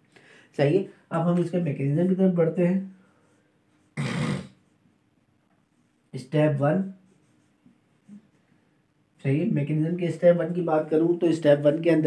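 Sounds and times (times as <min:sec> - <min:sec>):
marker writing on whiteboard: 0:06.8 - 0:08.4.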